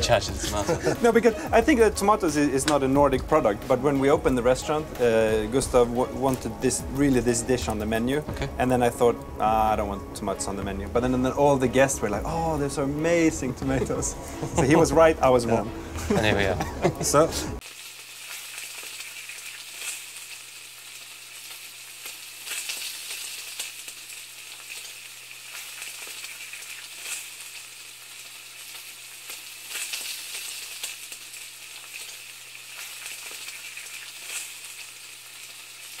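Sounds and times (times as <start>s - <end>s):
food frying sizzle: 0.0s - 36.0s.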